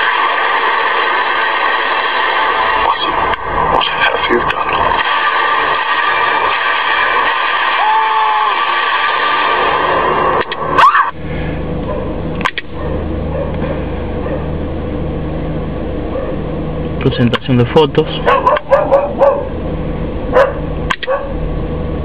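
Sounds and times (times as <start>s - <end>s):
steady low hum: 0.0s - 22.0s
sharp click: 10.4s - 10.6s, 12.4s - 12.7s, 20.9s - 21.2s.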